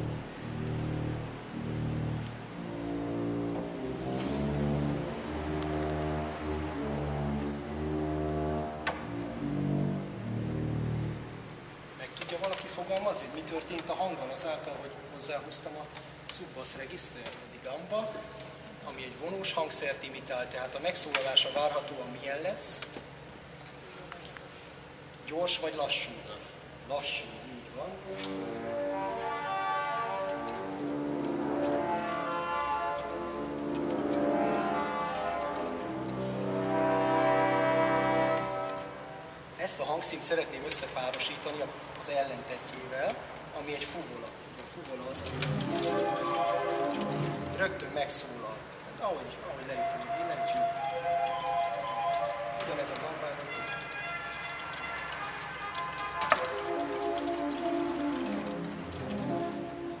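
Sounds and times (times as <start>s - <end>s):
pipe organ sustained chords: 0.0s - 12.0s, 27.8s - 41.8s, 44.8s - 48.7s, 49.3s - 60.0s.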